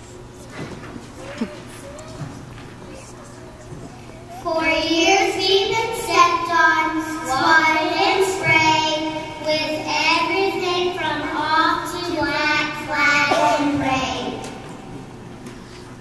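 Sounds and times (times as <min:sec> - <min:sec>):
children singing into microphone: 0:04.4 - 0:14.6.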